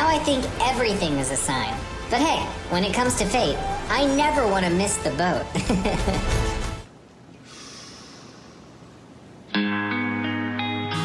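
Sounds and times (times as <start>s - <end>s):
soft breath into microphone: 7.4s - 8.8s.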